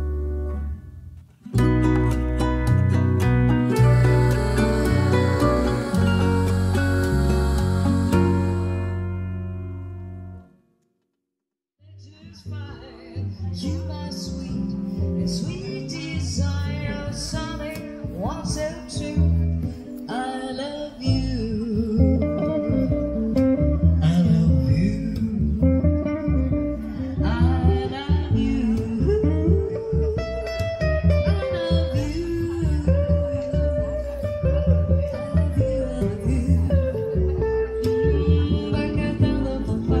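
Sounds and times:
plucked double bass: 0.0 - 10.5, 12.0 - 40.0
guitar: 0.0 - 10.8, 11.8 - 40.0
woman singing: 3.6 - 9.1, 20.1 - 22.8, 27.1 - 30.5, 31.2 - 40.0.

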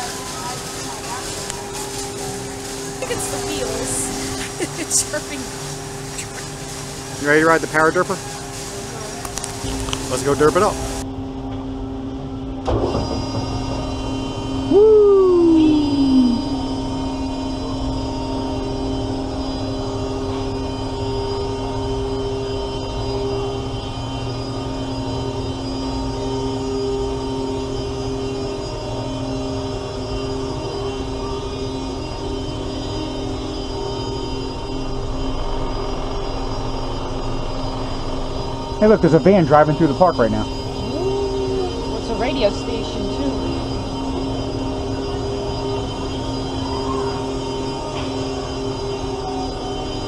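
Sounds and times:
fairground ride motor droning: 0.0 - 50.0.

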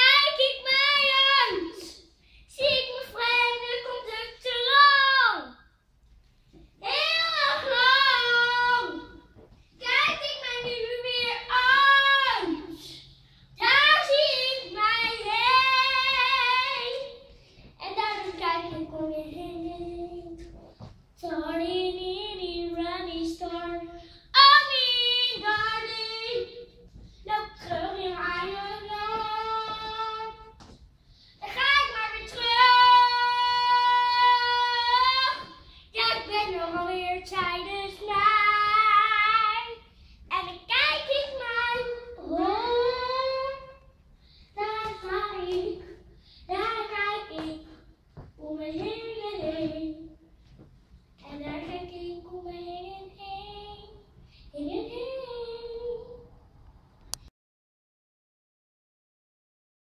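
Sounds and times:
girl singing unaccompanied: 0.0 - 5.8, 6.6 - 50.4, 51.1 - 56.4.

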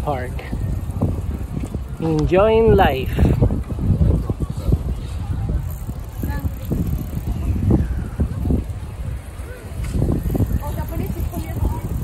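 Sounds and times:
bicycle rattling: 0.0 - 12.0
wind buffeting microphone: 0.0 - 12.0.

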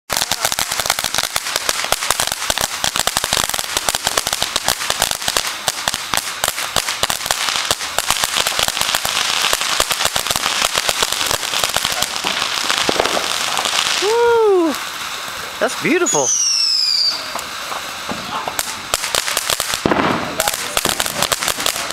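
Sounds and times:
firework crackling: 0.1 - 21.9
firework spray hiss: 0.1 - 21.9.

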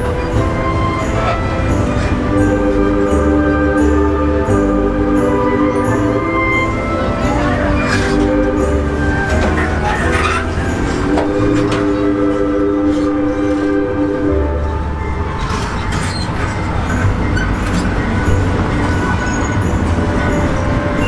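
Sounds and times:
train horn chord: 0.0 - 16.0
moving train rumble and rattle: 0.0 - 21.0.

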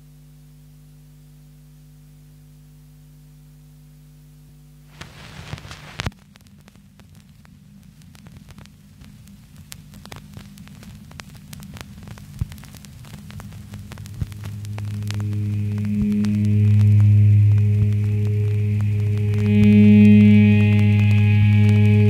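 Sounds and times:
turntable hum and hiss: 0.0 - 22.0
vinyl crackles and pops: 4.8 - 22.0
low synth note: 14.4 - 22.0.

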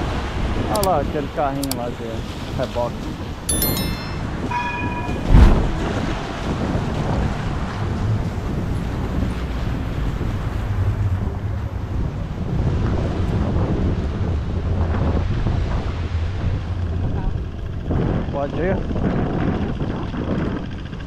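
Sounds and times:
wind buffeting microphone: 4.3 - 21.0.

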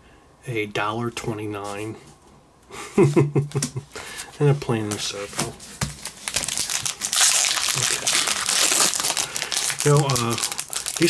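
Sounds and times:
foil wrapper crinkling: 4.8 - 11.0.

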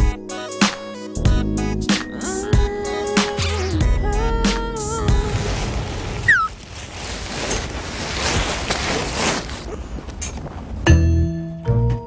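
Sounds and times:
nylon bag rustling: 4.9 - 10.8.

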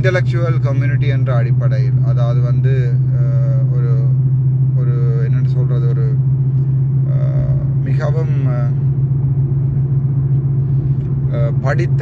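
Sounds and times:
car engine drone: 0.0 - 12.0
road noise: 0.0 - 12.0.

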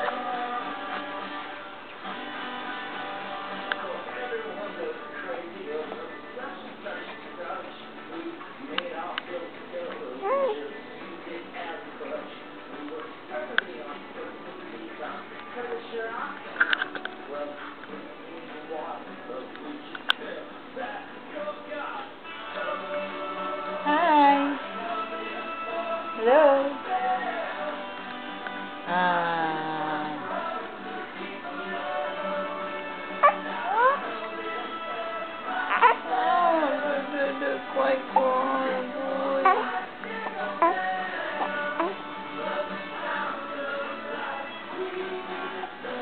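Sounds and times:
background music: 0.0 - 46.0
faint background voices: 3.1 - 46.0
infant whimpering and crying: 28.9 - 30.2, 33.2 - 34.2, 35.7 - 36.8, 39.4 - 39.8.

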